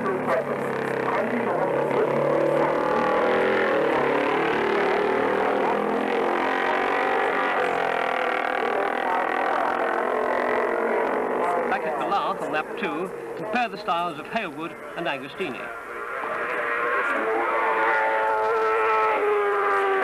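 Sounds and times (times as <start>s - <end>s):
motorcycle engines at high revs: 0.0s - 20.0s.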